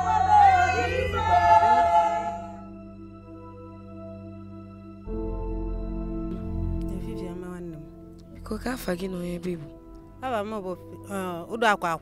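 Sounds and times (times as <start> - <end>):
group of people singing: 0.0 - 2.7.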